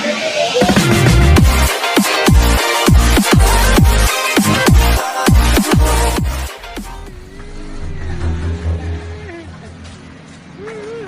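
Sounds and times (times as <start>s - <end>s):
steady hum: 6.2s - 10.1s.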